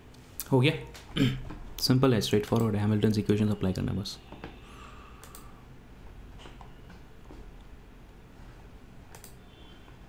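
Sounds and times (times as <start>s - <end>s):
faint computer clicks: 5.2s - 5.5s, 9.1s - 9.4s.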